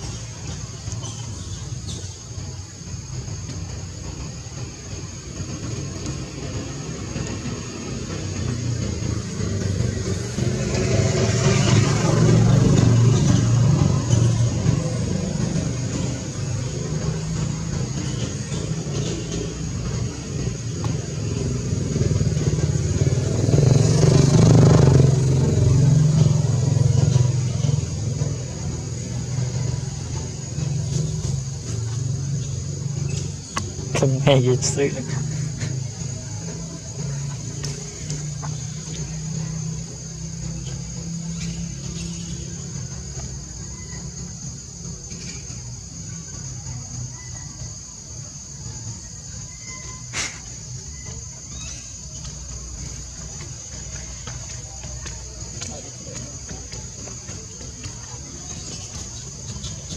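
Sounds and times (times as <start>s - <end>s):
traffic engine drone: 0.0s - 59.9s
vehicles passing: 0.0s - 59.9s.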